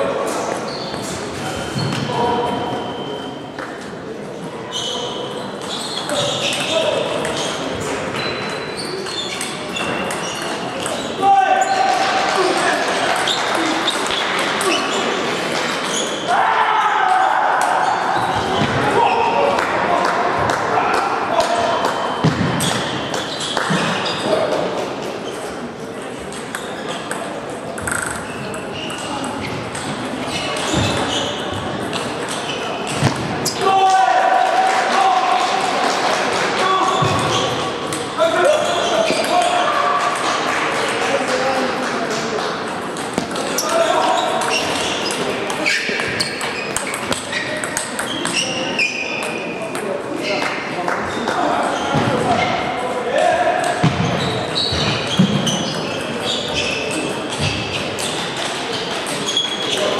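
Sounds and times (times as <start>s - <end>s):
people's voices: 0.0s - 59.9s.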